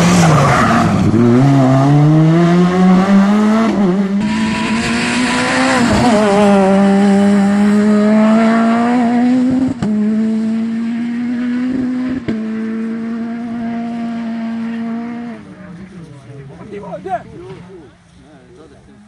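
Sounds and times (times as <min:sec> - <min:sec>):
rally car engine at high revs: 0:00.0 - 0:16.6.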